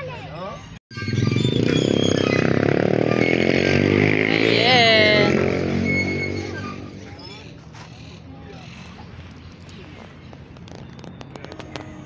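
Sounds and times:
passing vehicle engine: 0:01.0 - 0:12.0.

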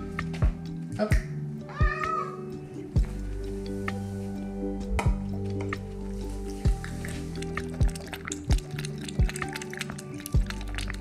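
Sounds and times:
music with thumping beat: 0:00.0 - 0:02.2, 0:04.8 - 0:05.9, 0:06.7 - 0:09.7, 0:10.3 - 0:11.0
cat meowing: 0:01.7 - 0:02.4.

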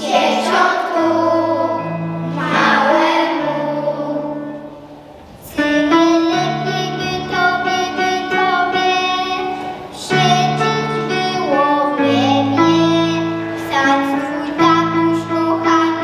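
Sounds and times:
children singing a carol: 0:00.0 - 0:16.0
instrumental accompaniment: 0:00.0 - 0:16.0.

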